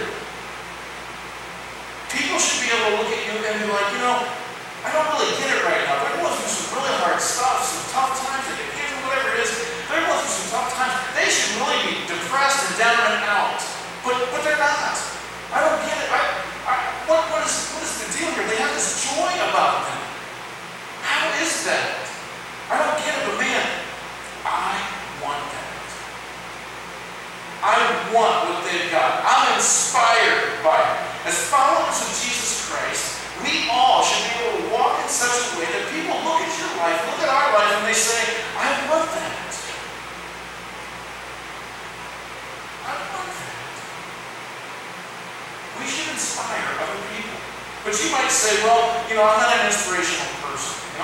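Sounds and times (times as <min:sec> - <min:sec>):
man preaching: 0:00.0 - 0:00.2, 0:02.1 - 0:20.2, 0:21.0 - 0:26.0, 0:27.6 - 0:39.9, 0:42.8 - 0:43.9, 0:45.7 - 0:51.0
room tone hiss: 0:00.0 - 0:51.0.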